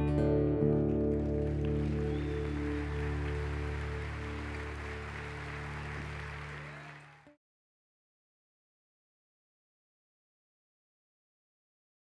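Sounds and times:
acoustic guitar chord ringing: 0.0s - 6.2s.

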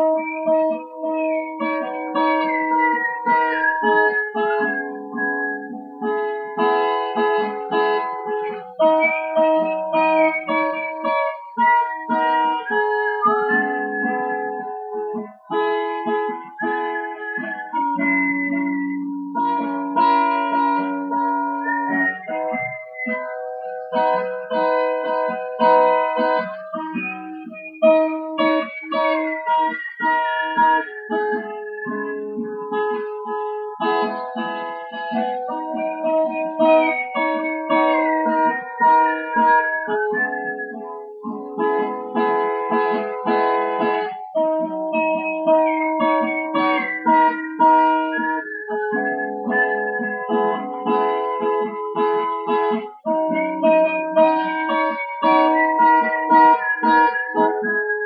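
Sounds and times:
acoustic guitar strumming: 0.0s - 58.0s
whistled melody: 0.0s - 58.0s.

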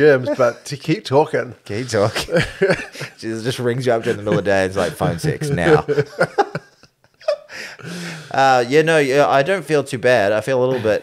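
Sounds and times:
men laughing: 0.1s - 0.6s, 1.9s - 8.3s, 10.7s - 11.0s
breath: 7.5s - 8.4s.

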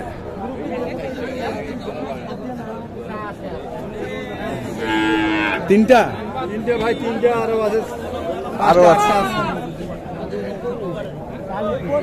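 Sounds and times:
cow mooing: 4.6s - 5.7s.

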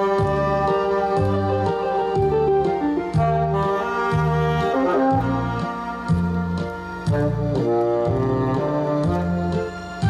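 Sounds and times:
backing track with bass line: 0.0s - 10.0s
tenor saxophone melody: 0.0s - 10.0s.

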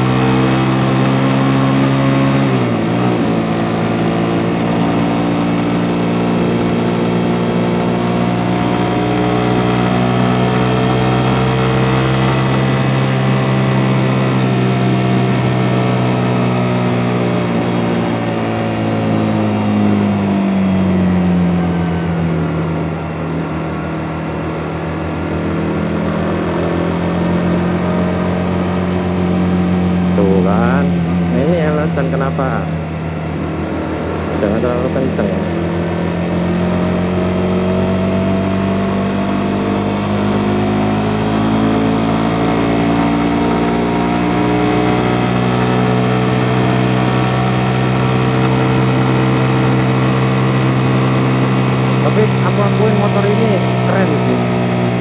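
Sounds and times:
motorcycle engine while riding: 0.0s - 55.0s.

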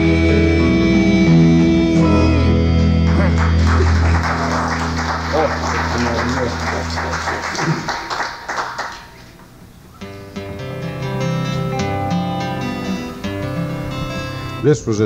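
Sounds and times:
gospel band final chord: 0.0s - 9.3s
guitar picking notes: 0.0s - 9.4s, 10.0s - 15.0s
voices calling out: 3.0s - 8.1s
congregation applauding: 3.0s - 9.5s.

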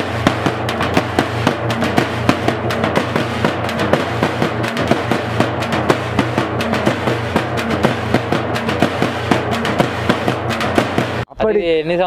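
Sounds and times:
frame drums beaten with sticks: 0.0s - 11.3s.

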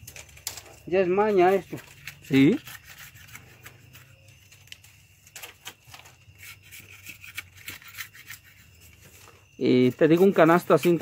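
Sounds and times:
knife scraping cane: 0.4s - 5.0s, 5.9s - 11.0s.

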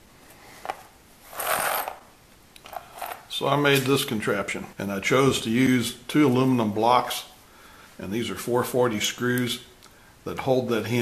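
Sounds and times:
short scraping rustle: 0.4s - 2.0s.

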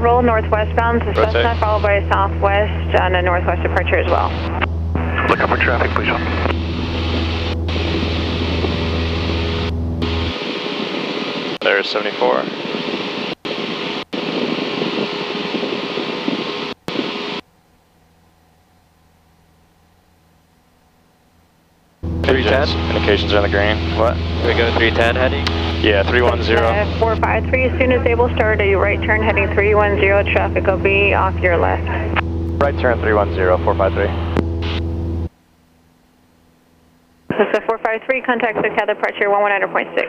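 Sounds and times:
faint low hum: 0.0s - 10.4s, 16.7s - 40.0s
aircraft engine and propeller rush: 0.0s - 17.4s, 22.0s - 40.0s.

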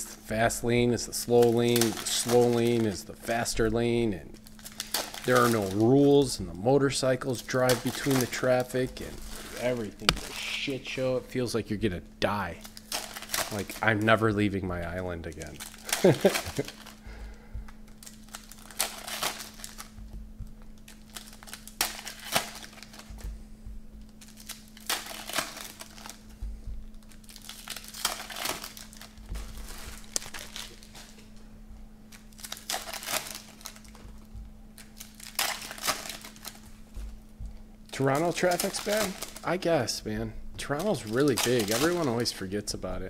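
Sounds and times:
foil wrappers crinkling and tearing: 0.3s - 11.6s, 12.2s - 23.4s, 24.0s - 31.5s, 32.1s - 42.8s
cards being handled: 1.3s - 3.0s, 7.5s - 10.8s, 14.8s - 23.4s, 24.0s - 31.5s, 32.1s - 39.6s, 40.6s - 42.4s.

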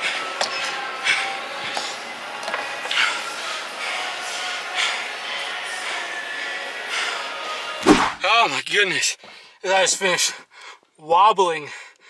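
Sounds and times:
gym room noise: 0.0s - 8.4s
faint background music: 0.0s - 9.2s
loud thump: 7.8s - 8.2s.

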